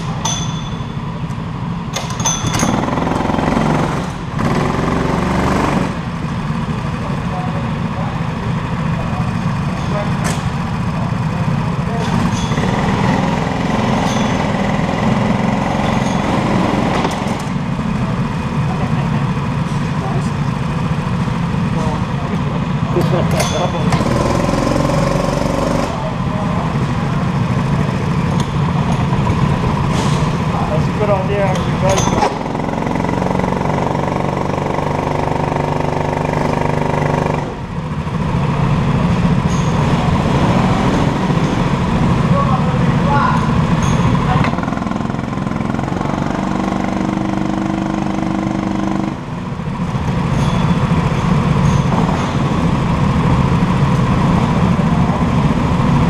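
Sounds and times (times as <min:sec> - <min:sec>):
go-kart engines idling: 0:00.0 - 0:56.0.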